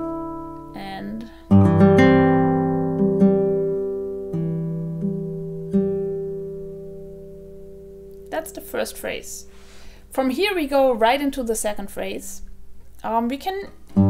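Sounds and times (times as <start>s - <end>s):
classical guitar fingerstyle arpeggio: 0.0s - 9.3s.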